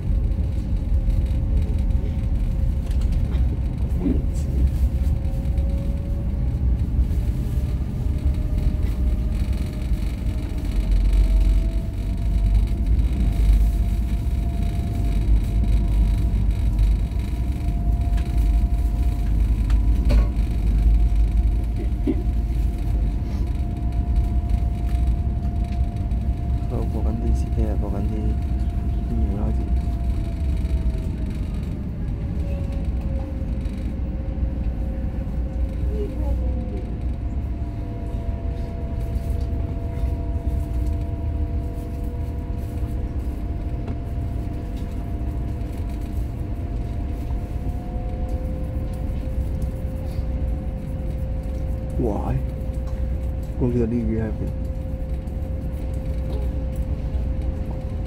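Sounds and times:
ferry engines rumbling: 0.0s - 58.0s.

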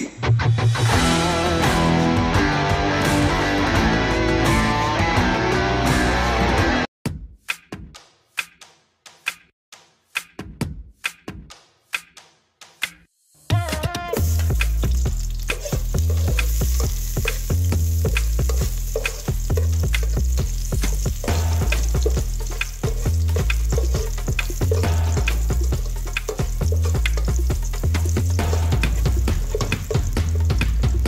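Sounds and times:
background music with deep bass: 0.6s - 6.8s, 13.5s - 31.0s
garlic sizzling in oil: 14.2s - 31.0s.

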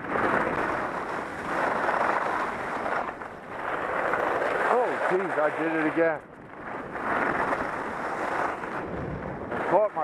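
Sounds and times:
wind rushing over microphone: 0.0s - 10.0s.

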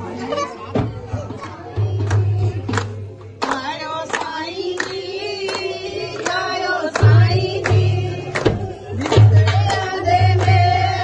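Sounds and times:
women singing: 0.9s - 11.0s
hand claps: 1.4s - 11.0s.

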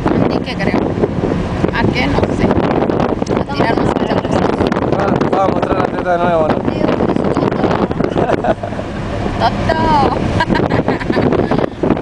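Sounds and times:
car running noise: 0.0s - 12.0s
wind buffeting microphone: 0.0s - 12.0s
voices and laughter: 7.4s - 11.9s.

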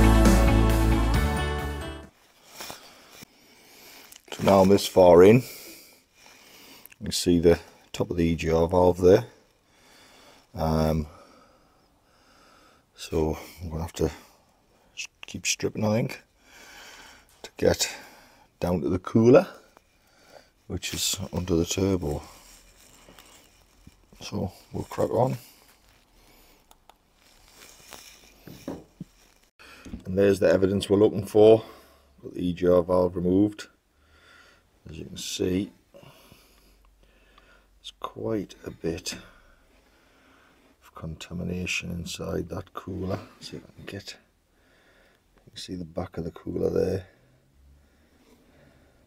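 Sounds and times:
faint rustles: 19.7s - 29.5s.

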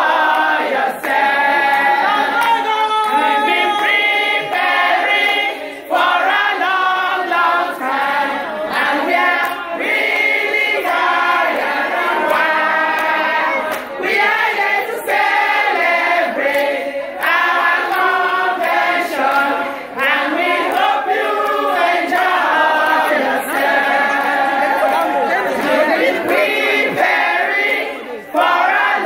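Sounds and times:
women singing in chorus: 0.0s - 29.0s.

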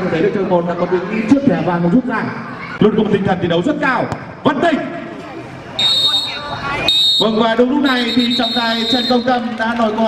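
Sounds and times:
referee's whistle blasts: 5.8s - 9.4s.

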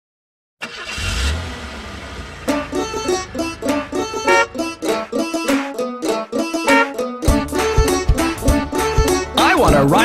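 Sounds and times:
bus engine rumble: 0.6s - 5.5s.

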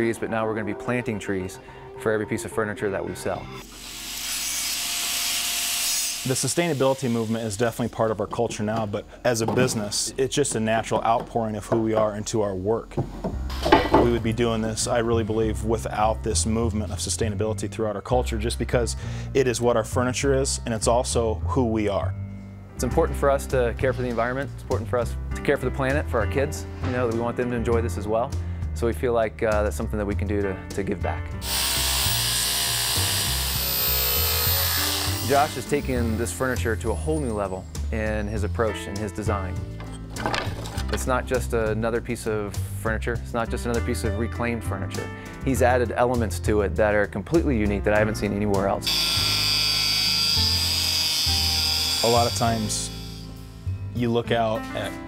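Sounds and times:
power tool sanding wood: 31.4s - 36.2s, 48.9s - 53.3s.

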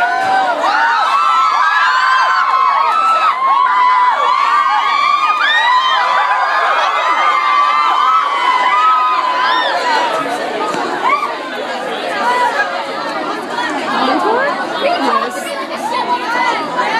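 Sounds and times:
crowd chattering and calling out: 0.0s - 16.9s.

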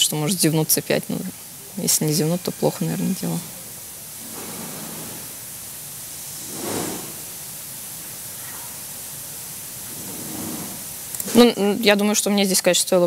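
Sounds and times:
recording hiss: 0.0s - 13.0s
breathy noise: 3.4s - 7.5s.

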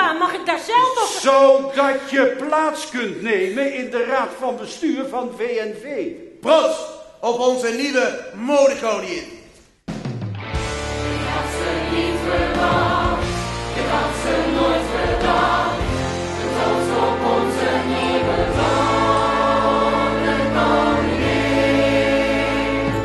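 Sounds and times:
band accompaniment: 9.8s - 23.0s
ensemble singing in chorus: 10.6s - 23.0s.

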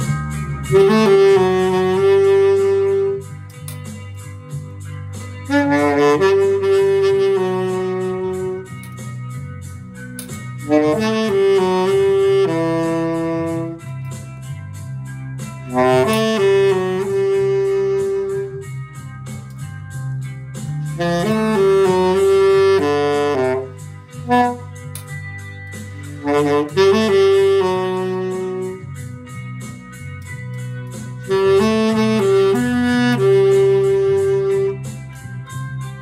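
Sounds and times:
saxophone playing a tune: 0.0s - 9.4s, 10.2s - 14.4s, 15.5s - 19.3s, 20.0s - 36.0s
backing track bass line: 0.0s - 36.0s.

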